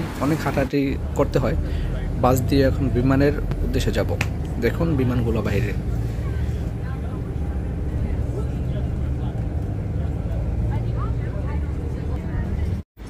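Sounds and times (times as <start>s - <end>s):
bus engine and road rumble: 0.0s - 12.9s.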